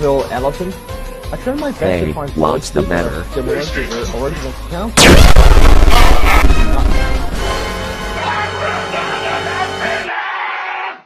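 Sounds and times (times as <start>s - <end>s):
loud blast with falling sweep: 5.0s - 7.8s.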